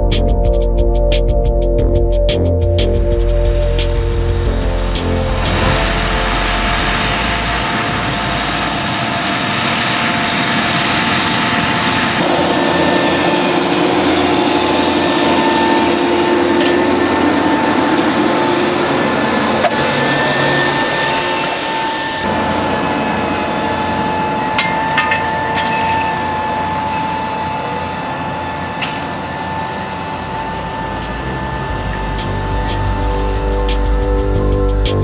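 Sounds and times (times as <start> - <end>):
tractor engine and transmission whine: 0.0 - 35.0.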